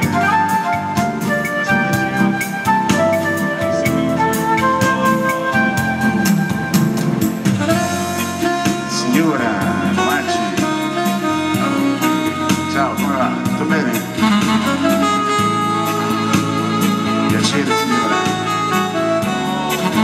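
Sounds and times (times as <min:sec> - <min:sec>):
jazz band playing: 0:00.0 - 0:20.0.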